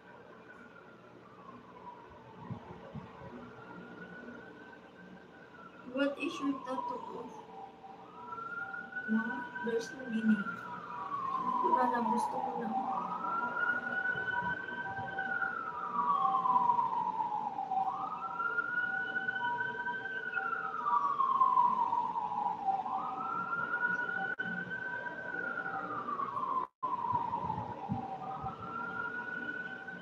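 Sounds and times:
siren wailing: 0:00.1 - 0:30.0.

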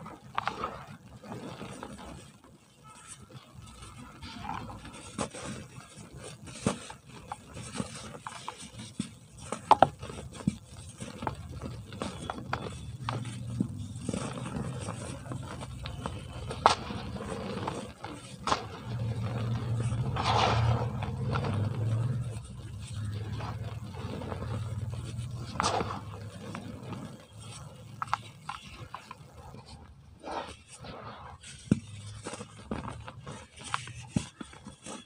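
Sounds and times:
cement blocks crunching: 0:03.6 - 0:35.0.

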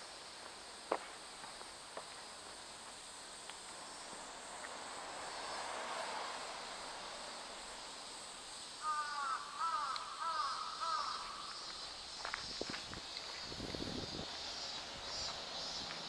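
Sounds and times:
outdoor background hiss: 0:00.0 - 0:16.0
crow cawing: 0:08.8 - 0:11.7.

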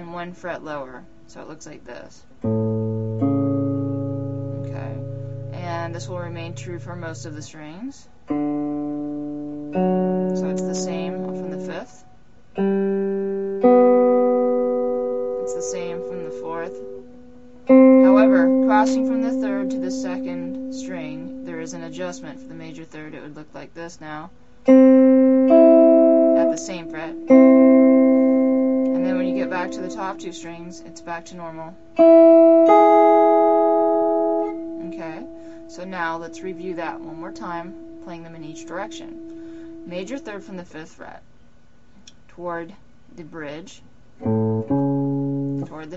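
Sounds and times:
clean electric guitar notes: 0:02.4 - 0:07.5, 0:08.2 - 0:22.9, 0:24.3 - 0:40.6, 0:44.2 - 0:45.9.

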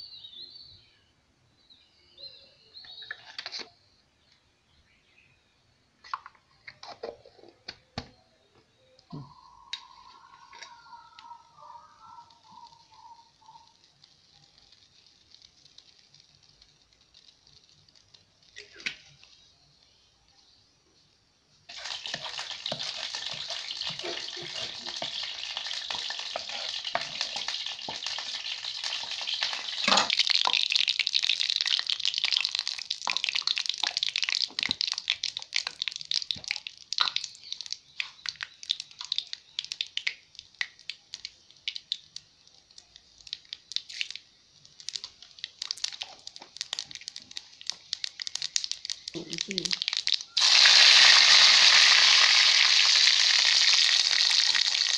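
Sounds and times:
oil sizzling in a pan: 0:09.8 - 0:20.6, 0:21.6 - 0:54.9.

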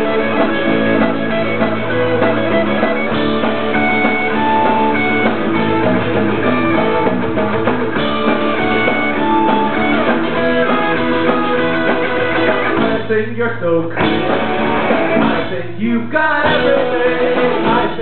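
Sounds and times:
lead guitar high notes: 0:00.0 - 0:13.0
rock band playing: 0:00.0 - 0:13.4, 0:14.0 - 0:18.0.

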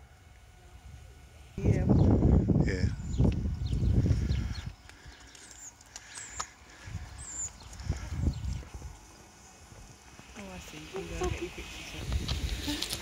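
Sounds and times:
birds chirping: 0:01.4 - 0:13.0.

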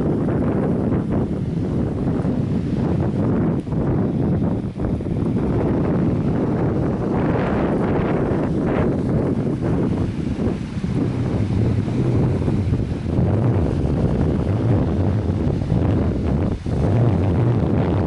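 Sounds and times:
wind buffeting microphone: 0:00.0 - 0:18.0.

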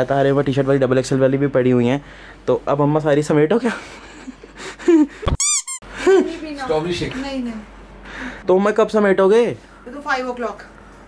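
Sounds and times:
high-pitched cartoon squeaks: 0:05.3 - 0:05.8.

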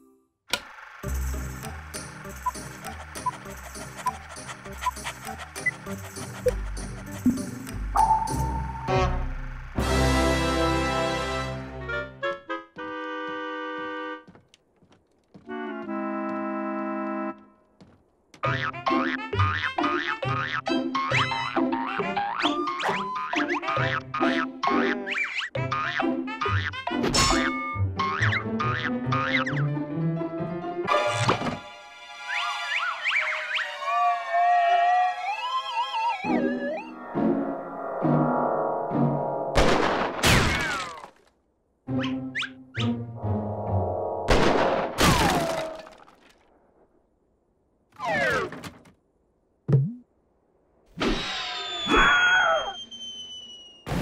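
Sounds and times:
music: 0:01.0 - 0:14.2, 0:15.5 - 0:17.6, 0:18.4 - 0:33.8, 0:41.9 - 0:44.0
wavering theremin-like tone: 0:32.3 - 0:38.4
cartoon crash: 0:39.5 - 0:41.1, 0:44.3 - 0:46.0.

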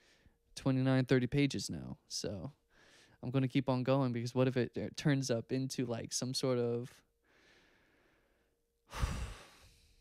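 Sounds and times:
man sighing into microphone: 0:08.9 - 0:09.8.

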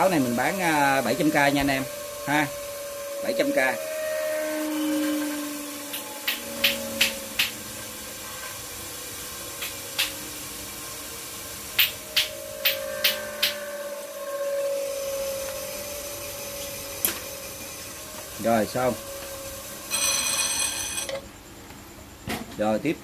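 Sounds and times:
small electric motor whirring: 0:00.0 - 0:21.3.

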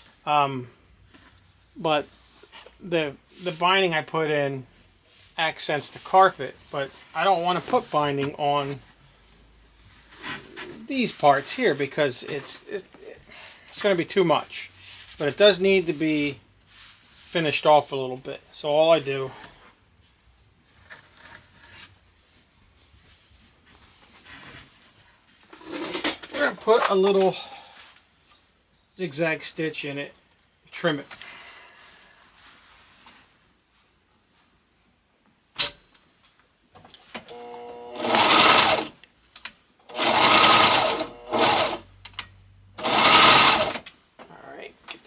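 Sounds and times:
sewing machine running: 0:37.5 - 0:38.9, 0:39.9 - 0:41.8, 0:42.8 - 0:43.8.

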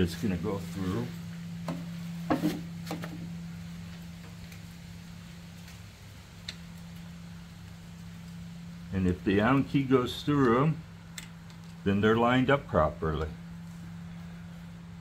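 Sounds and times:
low hum: 0:00.0 - 0:15.0.

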